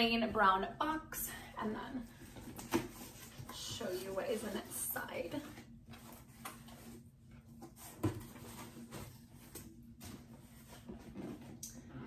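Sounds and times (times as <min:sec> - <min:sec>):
cardboard box rustling and scraping: 0:07.6 - 0:11.6.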